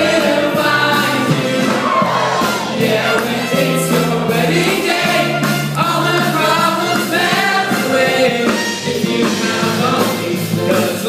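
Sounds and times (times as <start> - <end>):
cast singing as a choir: 0.0 - 11.0
musical accompaniment: 0.0 - 11.0.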